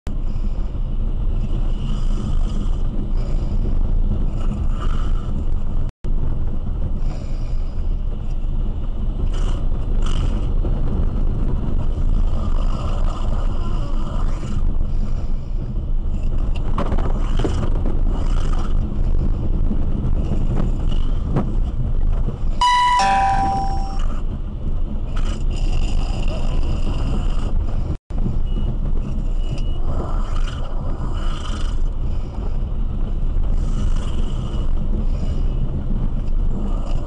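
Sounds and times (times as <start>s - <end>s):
road and tyre rumble: 0.1s - 37.0s
two-note electronic chime: 22.6s - 24.2s.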